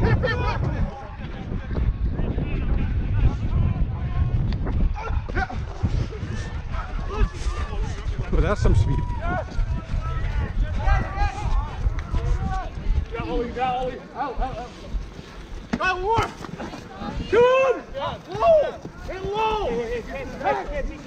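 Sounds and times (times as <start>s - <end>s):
wind on microphone: 0.0s - 21.0s
players and spectators shouting: 2.3s - 14.4s, 15.7s - 21.0s.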